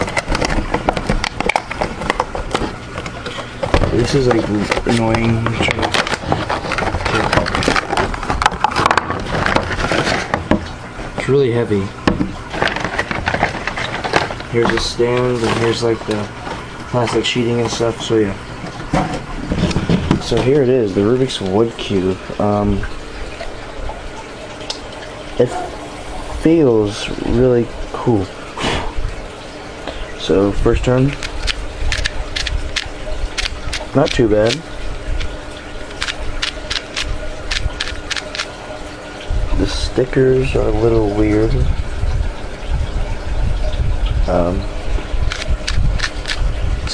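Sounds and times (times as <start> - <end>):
cardboard and plastic rustling: 0.0 - 21.3.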